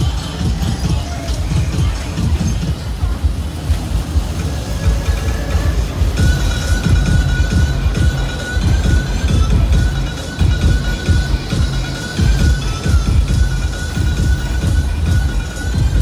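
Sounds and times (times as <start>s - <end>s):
fairground music with heavy bass: 0.0s - 16.0s
ride rumbling on rails: 0.0s - 16.0s
steady high tone: 4.3s - 16.0s.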